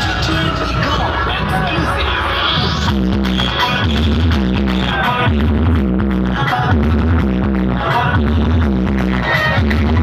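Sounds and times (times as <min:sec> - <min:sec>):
dance remix music with heavy bass: 0:00.0 - 0:10.0.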